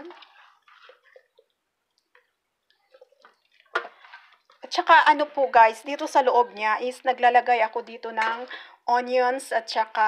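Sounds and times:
wet squishes: 0.0s - 4.7s.

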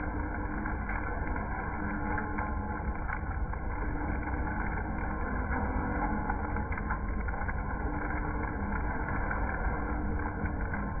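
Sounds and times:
coffee beans tumbling in drum: 0.0s - 11.0s
coffee roaster motor drone: 0.0s - 11.0s.

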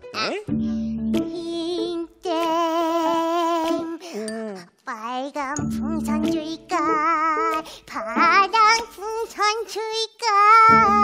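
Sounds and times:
high childlike voice singing: 0.1s - 0.5s, 1.3s - 11.0s.

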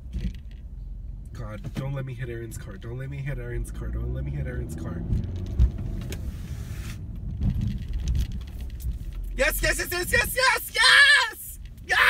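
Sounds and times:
car engine accelerating: 2.6s - 9.5s.

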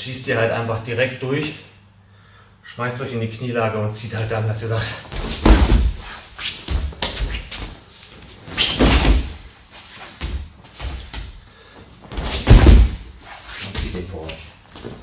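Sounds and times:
heavy thuds on judo mat: 5.1s - 7.4s, 8.7s - 9.5s, 12.1s - 13.2s.

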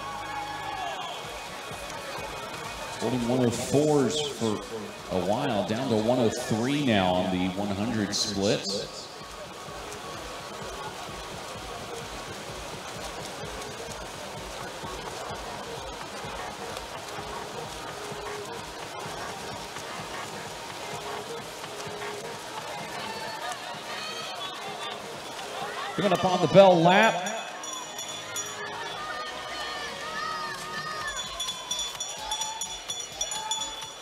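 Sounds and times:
murmur of voices: 0.0s - 34.0s
swimmers splashing water: 0.0s - 34.0s.

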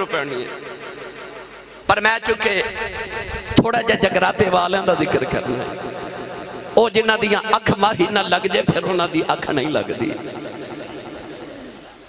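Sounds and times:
man's voice over loudspeaker: 0.0s - 11.9s.

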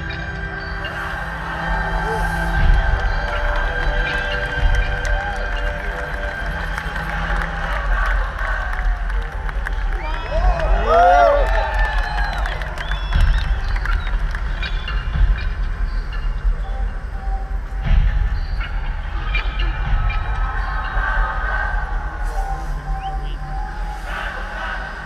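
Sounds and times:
crowd whistles: 0.0s - 16.9s
live concert music over pa: 0.0s - 18.8s.

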